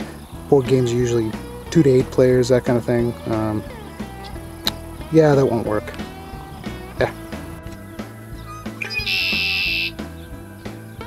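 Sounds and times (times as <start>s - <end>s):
laid-back guitar music: 0.0s - 11.0s
blackbird buzzy trill: 2.5s - 11.0s.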